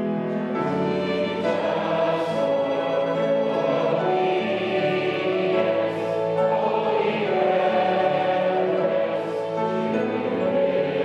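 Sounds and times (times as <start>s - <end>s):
congregation singing a hymn: 0.0s - 11.0s
flute: 0.0s - 11.0s
piano: 0.0s - 11.0s
violin: 0.0s - 11.0s.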